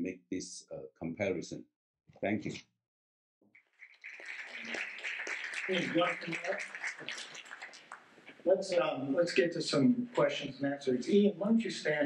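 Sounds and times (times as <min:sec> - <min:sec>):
audience applauding: 0:03.8 - 0:08.1.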